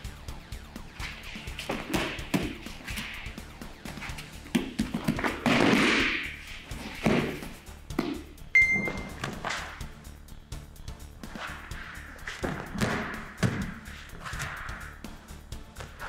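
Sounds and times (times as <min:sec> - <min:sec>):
background music: 0:00.0 - 0:16.0
knocks and thuds on a mat: 0:01.6 - 0:02.7, 0:12.4 - 0:13.8
high ringing ping: 0:08.6 - 0:09.2.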